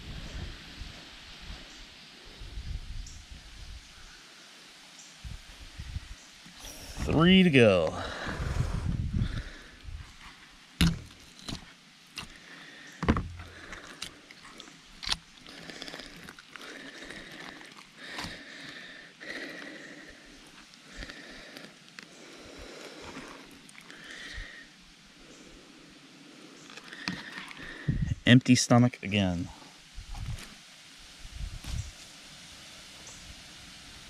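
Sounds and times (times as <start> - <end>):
sharp knocks: 10.8 - 11.2.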